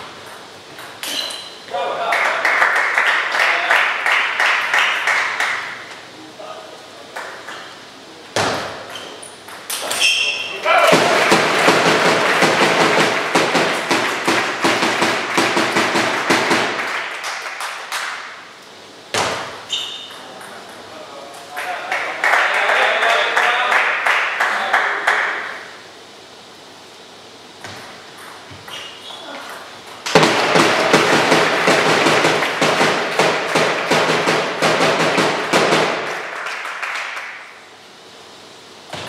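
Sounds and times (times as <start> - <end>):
spectator applause: 2.0 - 5.7, 10.6 - 18.2, 21.5 - 25.5, 30.3 - 33.9, 35.3 - 37.5.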